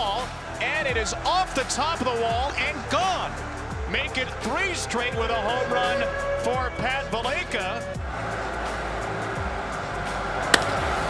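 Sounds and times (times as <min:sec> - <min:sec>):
background music: 0:00.0 - 0:11.0
wooden bat hitting baseball: 0:10.5 - 0:10.9.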